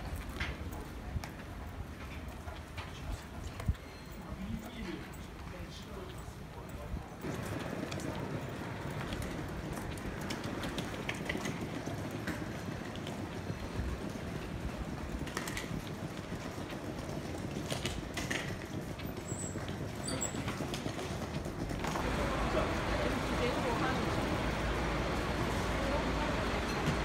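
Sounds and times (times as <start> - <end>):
outdoor traffic: 0.0 - 27.0
suitcase wheels rolling: 0.0 - 27.0.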